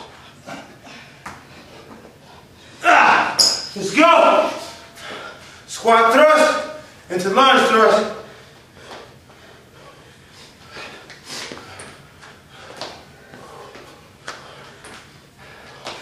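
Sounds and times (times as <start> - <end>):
man breathing hard: 4.7 - 5.7, 8.2 - 16.0.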